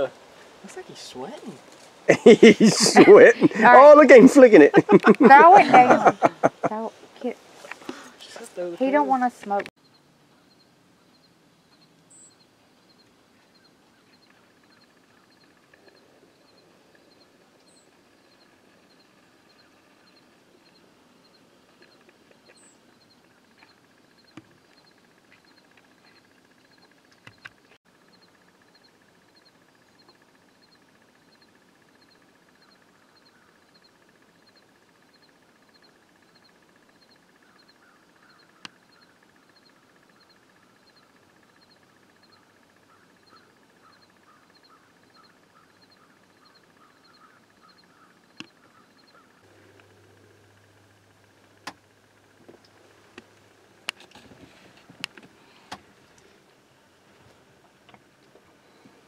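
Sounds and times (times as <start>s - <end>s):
faint outdoor ambience: 0.0s - 59.0s.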